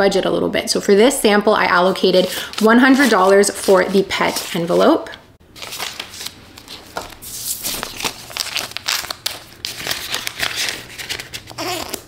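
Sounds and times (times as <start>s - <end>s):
banknotes rustling and crinkling: 1.7s - 12.0s.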